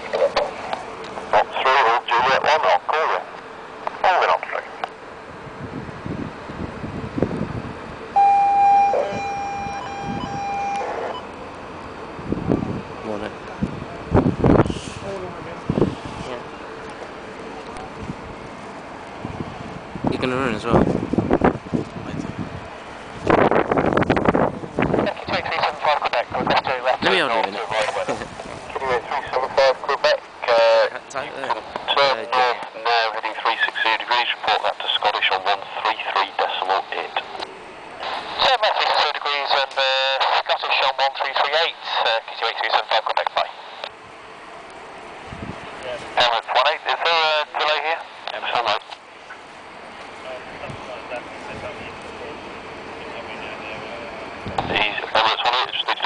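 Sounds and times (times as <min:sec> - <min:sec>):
radio hiss: 0:00.0 - 0:03.3, 0:03.9 - 0:04.9, 0:25.0 - 0:43.9, 0:45.8 - 0:49.4, 0:53.0 - 0:56.0
tinny radio voices: 0:00.0 - 0:04.9, 0:25.0 - 0:43.9, 0:45.8 - 0:49.0, 0:50.2 - 0:56.0.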